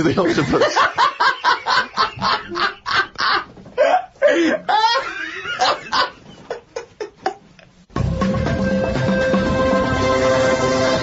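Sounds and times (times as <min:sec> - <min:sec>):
men laughing: 0:00.2 - 0:07.7.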